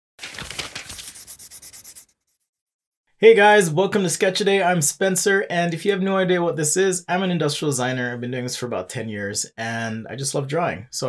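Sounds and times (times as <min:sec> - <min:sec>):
scratchy rubbing on paper: 0:00.6 - 0:02.6.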